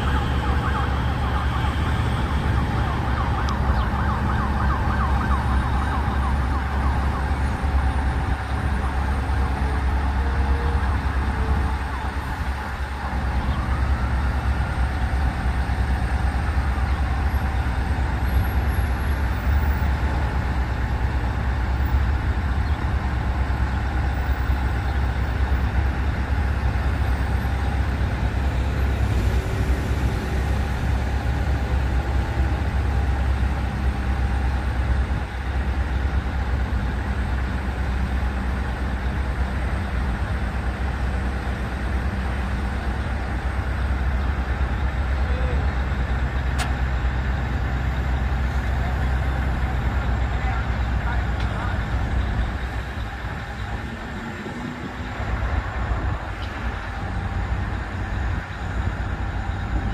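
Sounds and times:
diesel engine droning: 0.0s - 59.9s
sharp click: 46.6s - 46.8s.

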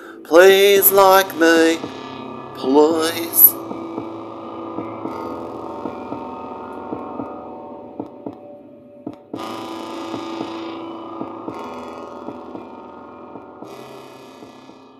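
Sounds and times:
sustained humming chord: 0.0s - 14.8s.

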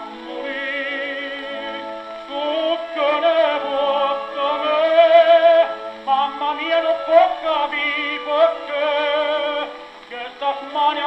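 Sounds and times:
old gramophone record of tenor singing: 0.0s - 11.0s.

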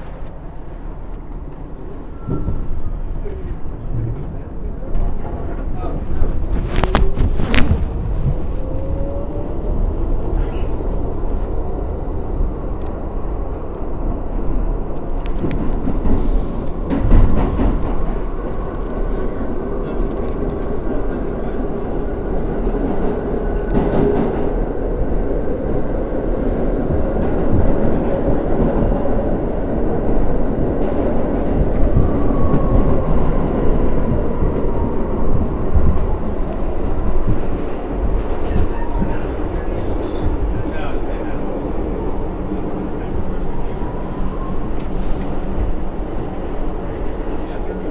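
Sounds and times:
subway wheels roaring on rails: 0.0s - 47.9s.

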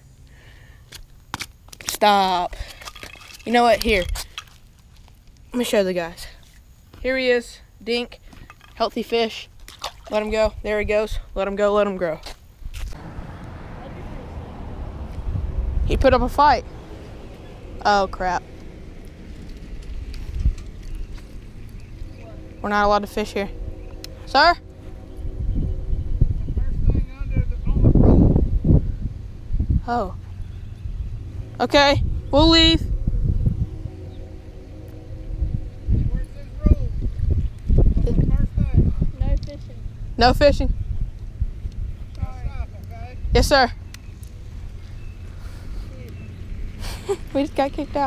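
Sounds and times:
wind rumbling on microphone: 12.5s - 48.0s.

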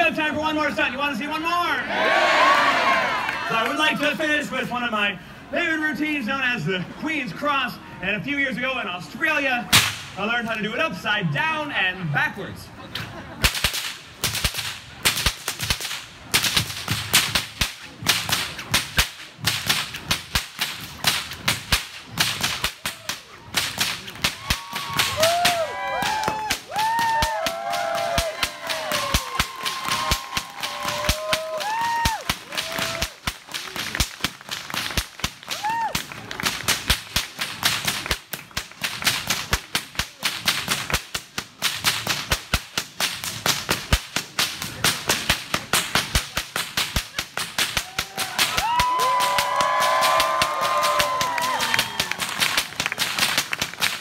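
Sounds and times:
whips cracking: 9.7s - 10.2s, 13.4s - 54.0s.

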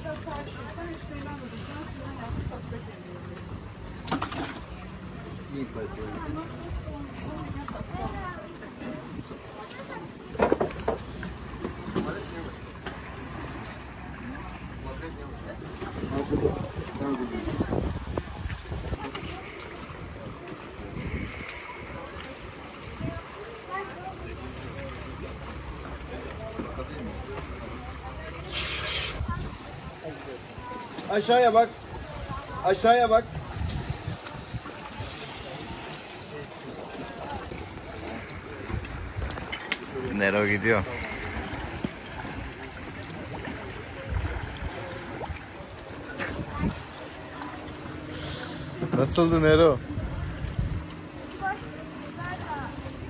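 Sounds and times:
faint distant voices: 0.0s - 53.0s
sea water washing: 0.0s - 53.0s
wind rumbling on microphone: 15.7s - 23.3s, 29.0s - 30.6s, 33.2s - 35.8s, 37.3s - 39.7s, 43.4s - 47.0s, 49.8s - 51.2s.

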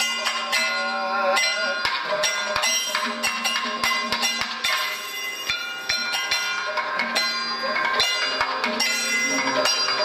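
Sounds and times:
person singing a wavering note: 0.0s - 2.8s
gong: 0.0s - 10.0s
ringing metal cymbals: 0.0s - 10.0s.

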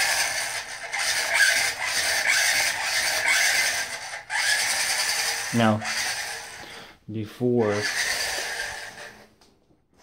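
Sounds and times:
toy truck electric motor whirring: 0.0s - 6.8s, 7.4s - 9.5s.

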